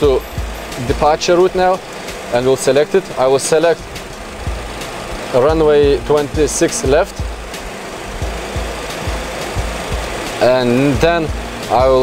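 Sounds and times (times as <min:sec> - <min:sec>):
cockpit low rumble and hiss: 0:00.0 - 0:12.0.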